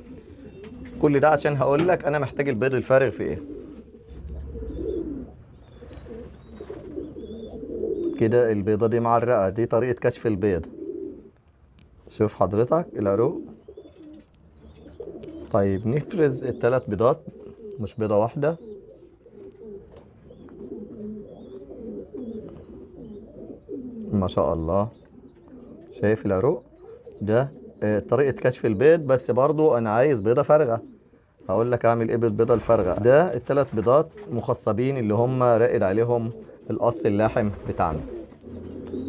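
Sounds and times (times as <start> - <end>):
pigeons cooing: 0.0 - 11.4, 12.5 - 39.0.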